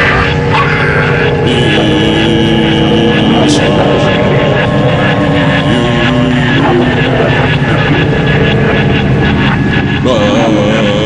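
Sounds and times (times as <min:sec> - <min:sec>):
distorted noise with droning pitches: 0:00.0 - 0:11.0.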